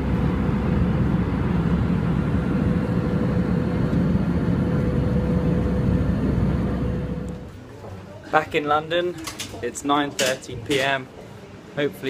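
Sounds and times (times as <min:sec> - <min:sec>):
airliner cabin drone: 0:00.0 - 0:07.6.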